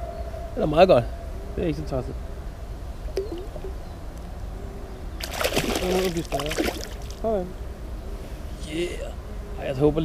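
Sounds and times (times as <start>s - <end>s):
fish splashing in water: 5.2s - 7.2s.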